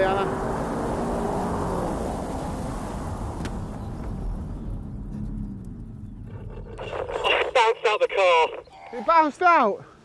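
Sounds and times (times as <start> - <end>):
wind and road noise: 0.0 - 10.0.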